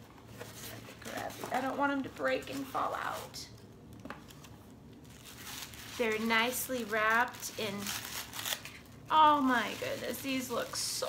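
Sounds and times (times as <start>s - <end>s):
gift wrapping crinkling: 0.3s - 11.0s.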